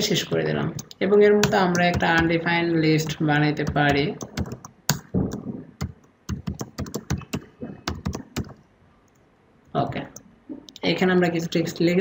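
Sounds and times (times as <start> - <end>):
typing on computer keyboard: 0.8 - 2.3, 3.0 - 8.6.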